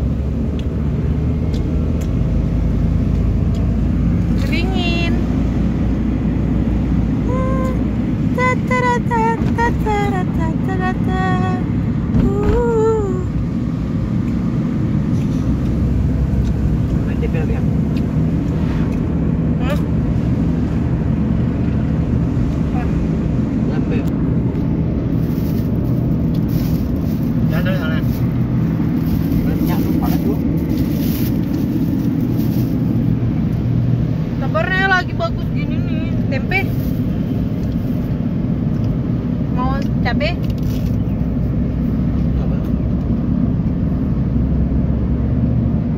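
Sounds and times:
car engine rumble and road noise: 0.0s - 45.9s.

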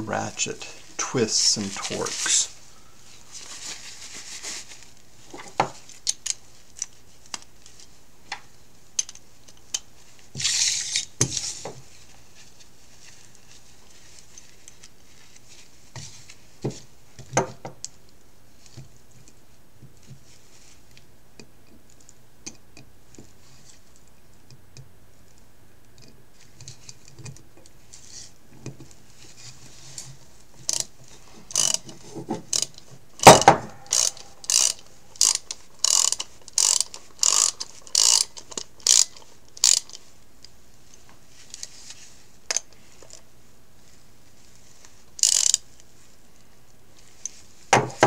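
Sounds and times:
scraping rustle: 0.7s - 7.1s
metal parts clicking on wood: 31.5s - 31.9s, 32.5s - 40.0s, 45.2s - 45.6s.

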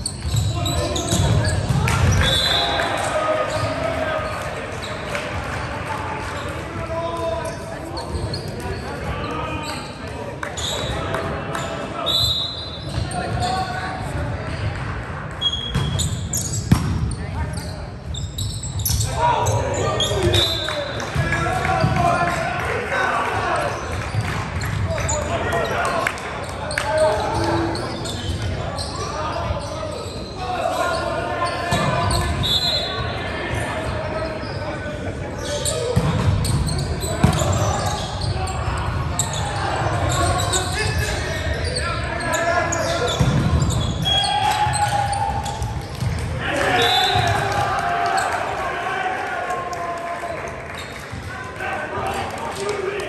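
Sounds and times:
players' voices and calls: 0.0s - 53.0s.

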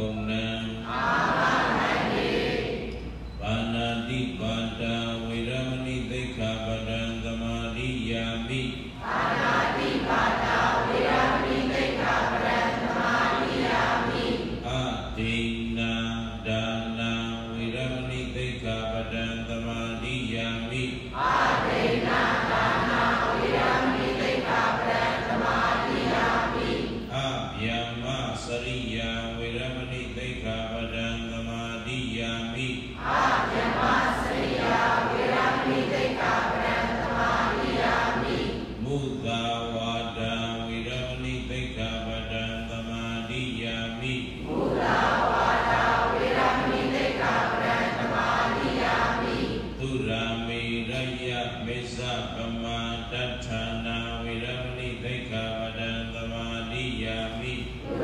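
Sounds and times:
man chanting on held notes: 0.0s - 1.0s, 3.4s - 9.0s, 9.7s - 25.4s, 26.0s - 44.9s, 45.5s - 58.0s.

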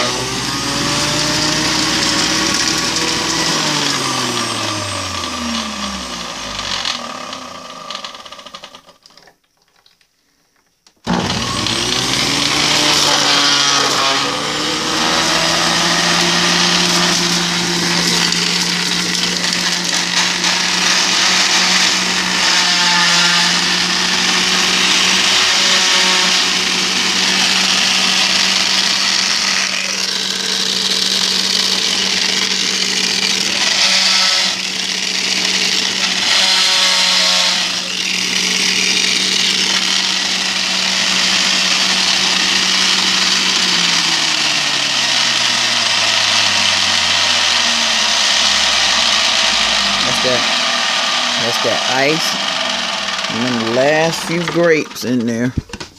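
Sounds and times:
juicer motor whining: 0.0s - 9.6s, 10.8s - 55.9s
grapes grinding in juicer: 0.0s - 10.0s, 10.8s - 55.9s.

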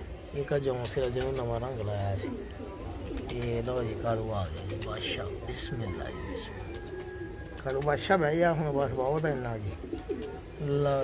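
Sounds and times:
pigeons cooing softly: 0.0s - 11.0s.

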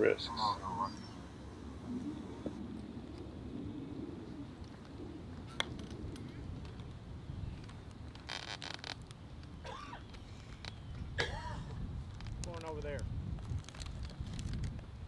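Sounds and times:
faint distant voices: 0.0s - 2.6s
wind rumbling on microphone: 0.0s - 15.0s.

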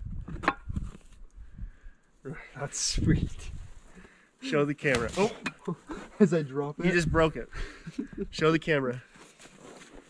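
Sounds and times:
sharp crack: 4.8s - 5.5s.

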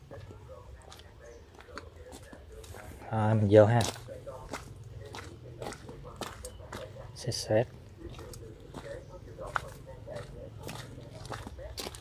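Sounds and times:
footsteps crunching on gravel: 0.0s - 12.0s.

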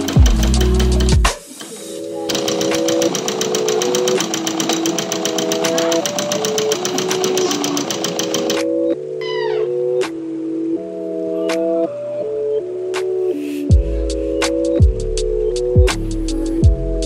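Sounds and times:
sewing machine stitching: 0.0s - 8.7s
slow background music: 0.0s - 17.0s.

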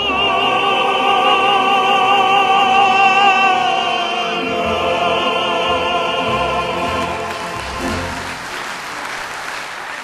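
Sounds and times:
choir singing chord: 0.0s - 8.5s
audience applauding: 6.8s - 10.0s.

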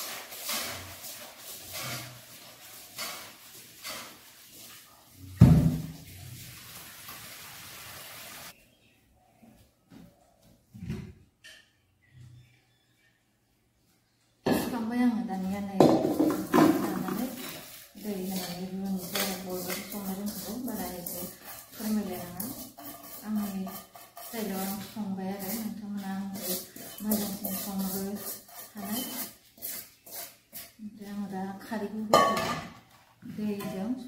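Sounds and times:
woman talking: 14.5s - 22.6s, 23.2s - 29.1s, 30.8s - 32.5s, 33.2s - 34.0s
metal bowl and pot clinking: 15.8s - 30.7s, 32.1s - 32.7s.

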